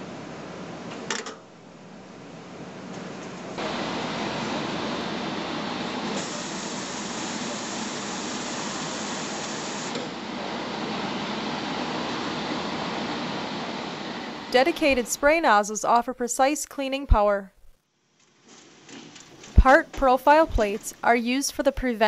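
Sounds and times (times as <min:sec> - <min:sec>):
water spray jets hissing: 0:06.1 - 0:10.0.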